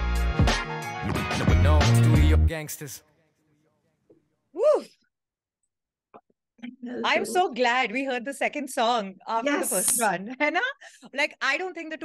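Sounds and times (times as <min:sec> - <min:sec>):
woman's wordless exclamation: 0:04.6 - 0:05.0, 0:06.7 - 0:08.0, 0:09.2 - 0:11.4.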